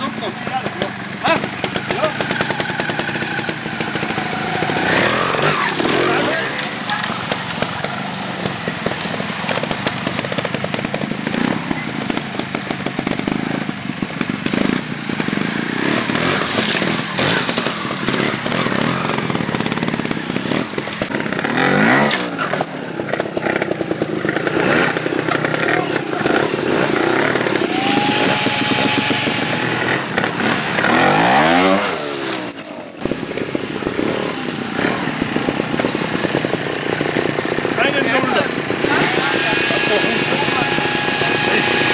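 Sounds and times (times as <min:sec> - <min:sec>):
motorcycle engines revving: 0:00.0 - 0:41.9.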